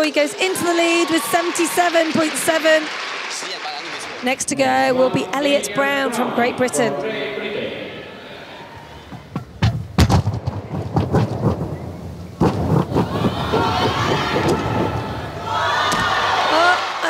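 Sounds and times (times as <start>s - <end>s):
crowd cheering: 0.0s - 9.4s, 12.6s - 17.0s.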